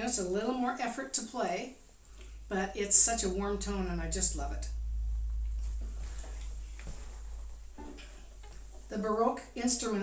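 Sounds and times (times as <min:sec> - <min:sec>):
short pitched tone: 0:03.5 - 0:08.7
string instruments being handled: 0:05.6 - 0:08.9.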